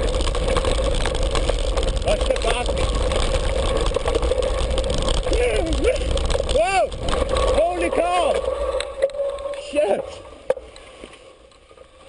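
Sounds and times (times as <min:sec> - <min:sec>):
wind rumble on microphone: 0:00.0 - 0:10.5
constant hum: 0:00.0 - 0:12.0
mountain bike riding on dirt: 0:00.0 - 0:12.0.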